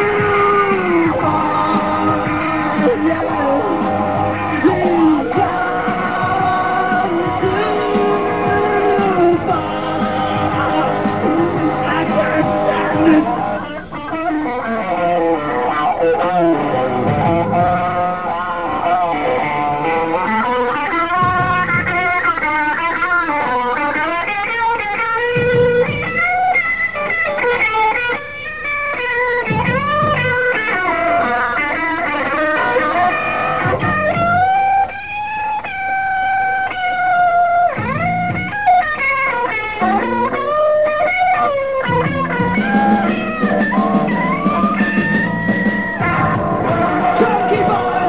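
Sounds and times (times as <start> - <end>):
electric guitar lead bending notes: 0.0 - 48.0
live rock music: 0.0 - 48.0.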